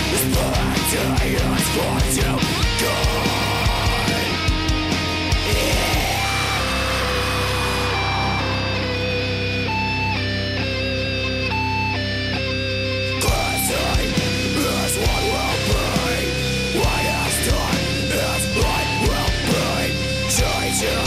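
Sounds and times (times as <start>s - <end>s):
drums: 0.0s - 21.0s
electric guitars: 0.0s - 21.0s
guitar playing long single notes: 0.0s - 21.0s.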